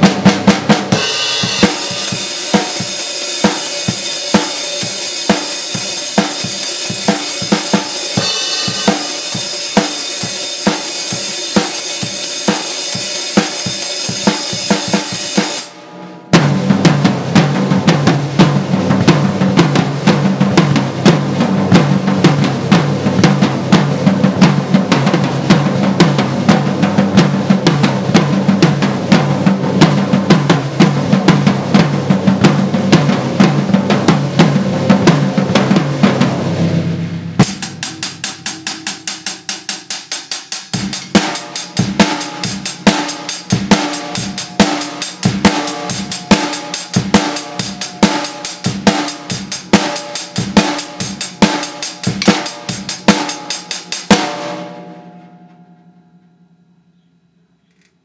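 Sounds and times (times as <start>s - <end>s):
drum kit beat: 0.0s - 55.4s
cymbal ringing: 0.9s - 16.4s, 37.4s - 57.6s.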